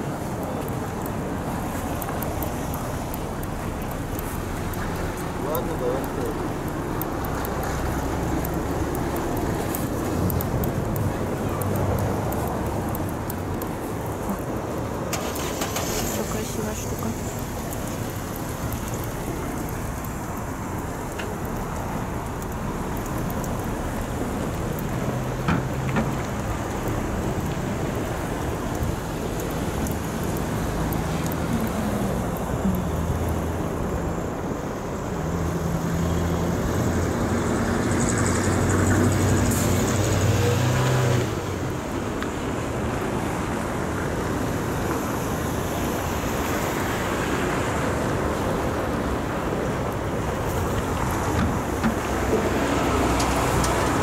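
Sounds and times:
steady rushing noise: 0.0s - 40.5s.

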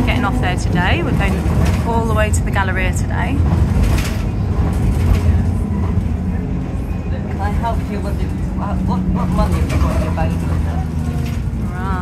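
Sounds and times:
bus engine and tyres rumbling: 0.0s - 12.0s.

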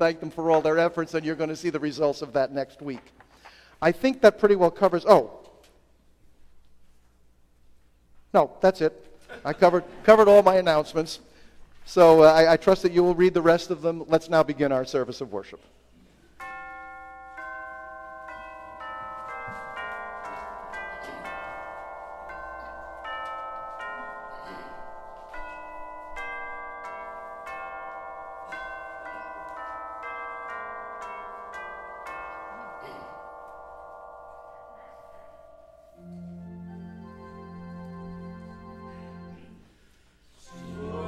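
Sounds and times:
chimes playing slow melody: 16.4s - 39.6s, 40.4s - 41.0s.

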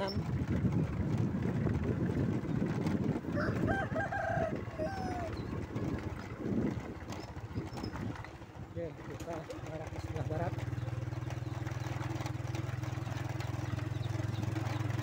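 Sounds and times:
moving vehicle rumble: 0.0s - 15.0s
rooster crowing: 3.3s - 5.4s.

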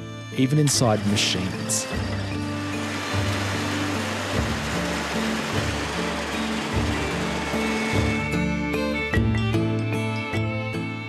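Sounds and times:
music with slow bass notes: 0.0s - 11.0s
grain auger hissing: 0.4s - 8.9s.

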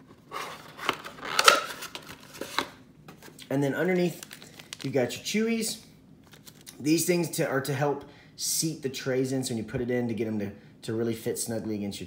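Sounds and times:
paper packaging rustling: 0.0s - 5.2s, 6.2s - 6.8s.

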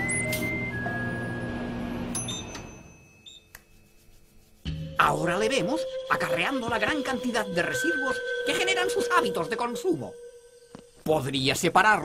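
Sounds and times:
microwave bell ding: 0.0s - 3.6s
background music: 4.6s - 12.0s.

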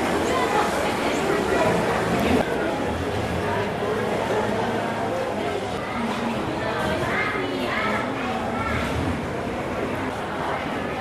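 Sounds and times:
background hubbub: 0.0s - 11.0s.

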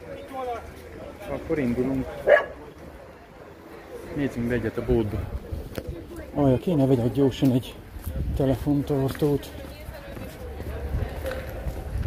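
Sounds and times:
low background noise: 0.0s - 12.0s
dog barking: 2.2s - 2.6s.

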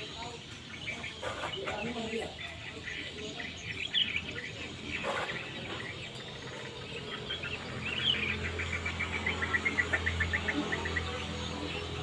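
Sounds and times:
rising and falling bird call: 0.0s - 12.0s
small birds chirping: 0.0s - 12.0s.

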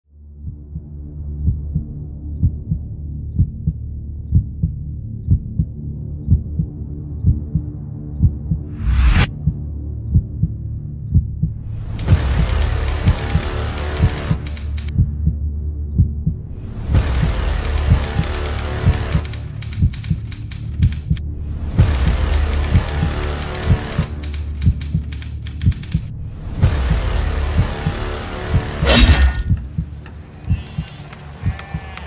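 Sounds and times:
low drone with pulse: 0.1s - 30.9s
rising whoosh: 8.7s - 9.3s.

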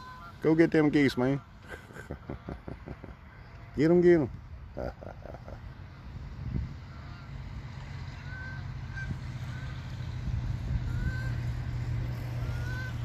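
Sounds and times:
distant geese honking: 0.0s - 1.8s, 5.2s - 13.0s.

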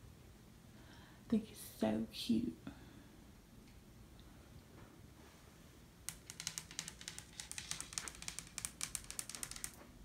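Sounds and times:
fingernails tapping on wood: 6.1s - 9.8s.

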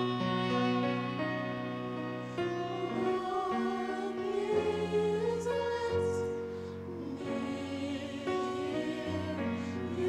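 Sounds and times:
mixed choir singing: 0.0s - 10.0s.

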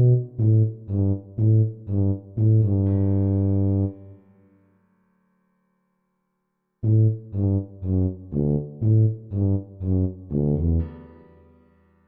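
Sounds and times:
tuba notes: 0.0s - 4.2s, 6.8s - 11.3s.

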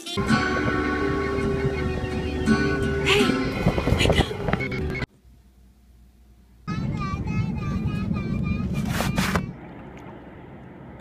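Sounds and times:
airliner cabin rumble: 0.2s - 5.1s, 6.6s - 11.0s.

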